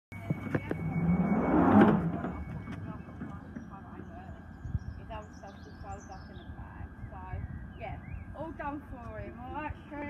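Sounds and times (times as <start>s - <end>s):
steady whine: 0.1s - 10.0s.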